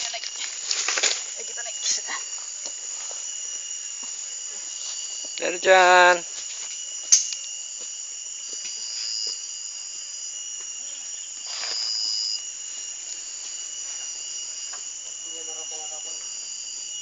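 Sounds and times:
insects chorus: 0.0 - 17.0.

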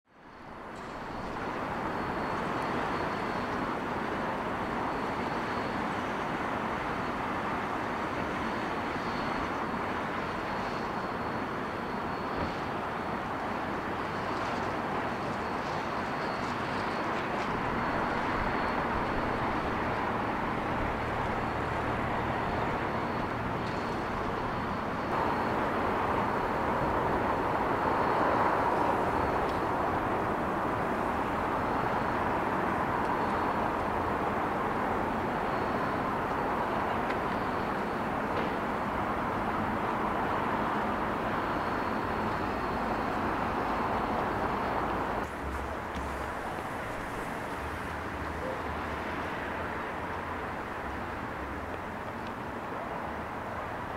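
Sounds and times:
distant road traffic: 0.1 - 53.9.

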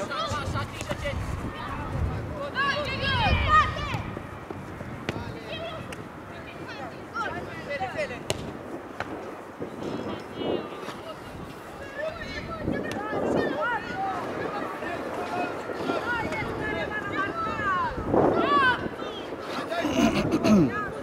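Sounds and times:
players shouting: 0.0 - 4.4, 11.8 - 20.0
ball being kicked: 8.2 - 9.1.

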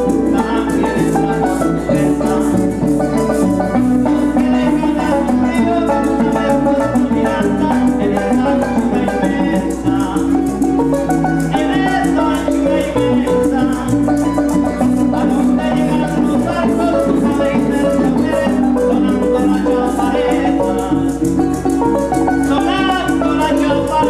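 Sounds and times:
harp and plucked strings: 0.0 - 24.0
maracas shaking: 0.0 - 24.0.

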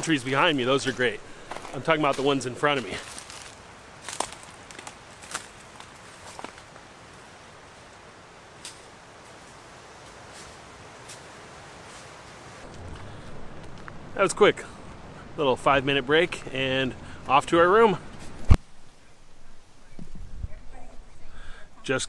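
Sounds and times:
footsteps on leafy rocky path: 0.0 - 14.0
faint outdoor hiss: 0.0 - 22.0.

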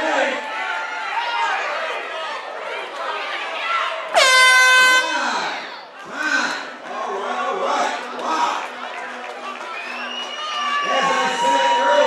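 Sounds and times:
crowd shouting: 0.0 - 6.2, 9.5 - 12.0
air horn: 4.2 - 5.5.

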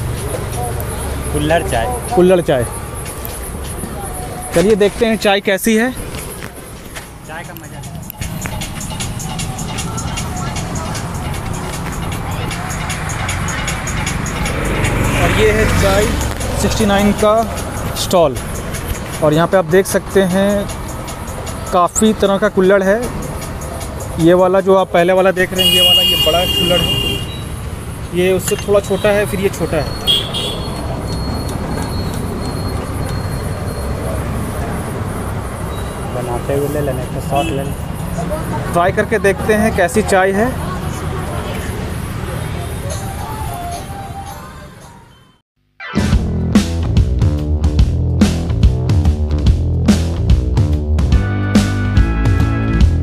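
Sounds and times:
street and traffic noise: 0.0 - 53.0
music with quick beat: 7.8 - 15.0.

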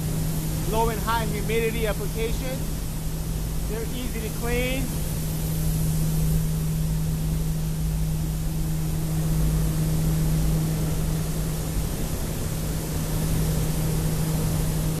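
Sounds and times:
industrial machinery hum: 0.0 - 15.0
machinery hiss: 0.0 - 15.0.

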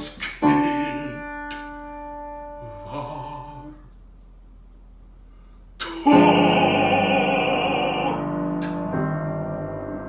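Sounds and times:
low piano trill in bass: 0.0 - 3.9, 5.8 - 10.0
grand piano chord ringing: 6.0 - 10.0.

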